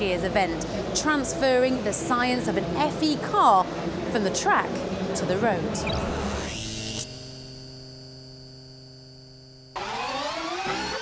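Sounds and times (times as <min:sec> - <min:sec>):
electronic drone hum: 0:05.7 - 0:11.0.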